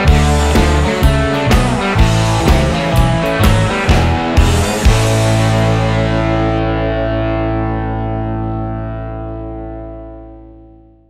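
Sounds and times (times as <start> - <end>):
distorted electric guitar chord ringing: 0.0 - 11.0.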